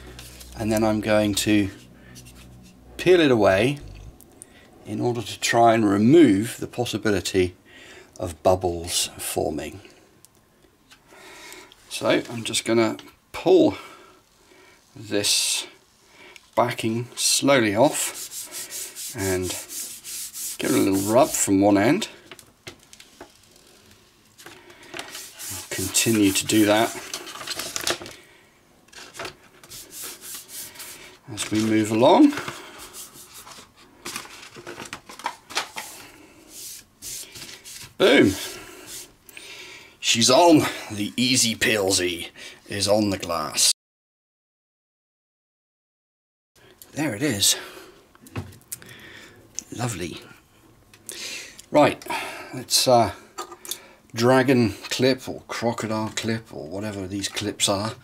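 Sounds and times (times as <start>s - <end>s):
hand rubbing sheet on glass: 17.9s - 21.6s, 25.1s - 27.0s, 29.7s - 31.0s.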